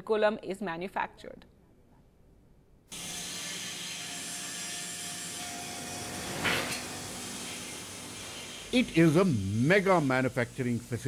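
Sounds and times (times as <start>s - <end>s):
brief loud factory noise: 3.0s - 8.7s
machinery hum: 3.0s - 11.0s.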